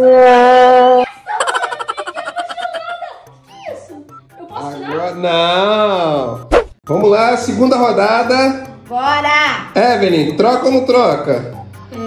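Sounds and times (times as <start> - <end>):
person squealing in rapid pulses: 0.0 - 2.9.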